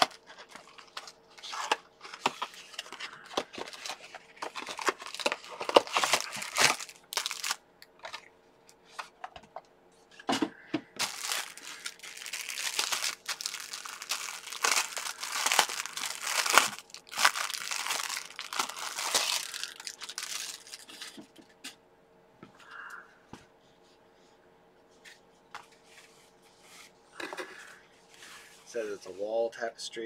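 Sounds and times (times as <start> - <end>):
plastic packaging crinkling: 0.0 - 8.3, 11.0 - 21.2.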